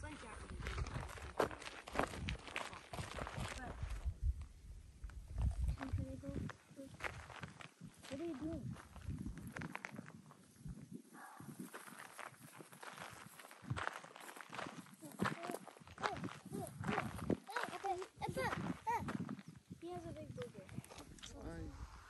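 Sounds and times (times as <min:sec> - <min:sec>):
footsteps crunching on dirt: 0:00.0 - 0:04.1, 0:05.0 - 0:20.5
high-pitched voices calling and talking: 0:14.9 - 0:21.2.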